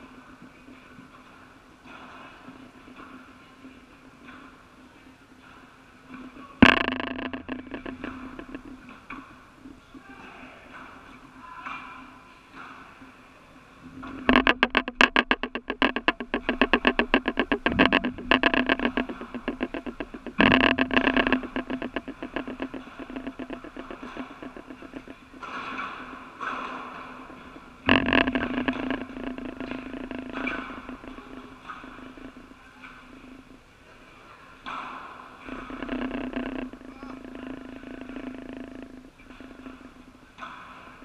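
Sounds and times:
ball striking rackets and walls: 0:06.6 - 0:09.4, 0:14.1 - 0:27.2
rapid rattling pulse: 0:06.6 - 0:11.5, 0:13.9 - 0:33.7, 0:35.4 - 0:41.0.

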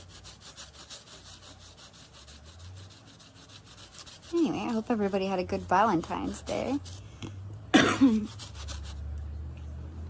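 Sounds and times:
cotton pad scrubbing metal plate: 0:00.0 - 0:07.1, 0:08.1 - 0:09.0.

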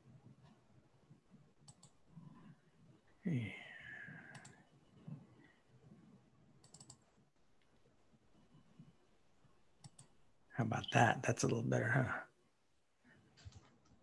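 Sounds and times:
computer mouse clicks: 0:01.6 - 0:02.0, 0:04.3 - 0:04.6, 0:06.6 - 0:07.2, 0:09.8 - 0:10.2.

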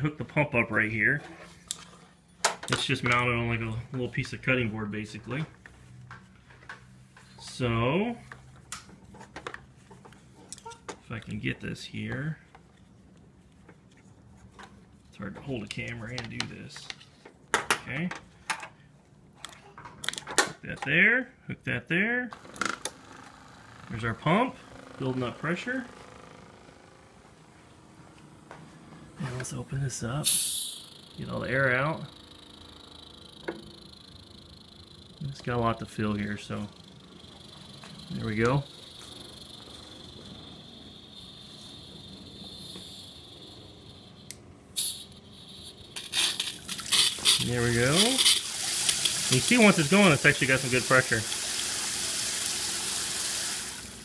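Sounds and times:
electric water pump humming: 0:22.4 - 0:54.0.

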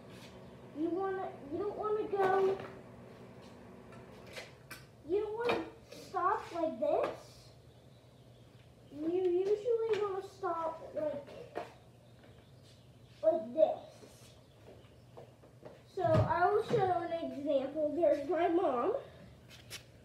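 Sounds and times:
child talking: 0:00.8 - 0:02.7, 0:05.0 - 0:07.6, 0:08.9 - 0:11.7, 0:13.2 - 0:14.4, 0:15.9 - 0:19.2.

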